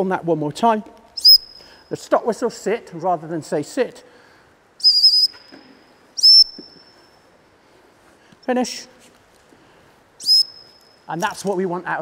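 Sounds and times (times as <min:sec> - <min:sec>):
dog whistle blasts: 0:01.2 - 0:01.6, 0:04.8 - 0:05.5, 0:06.2 - 0:06.9, 0:10.2 - 0:10.9.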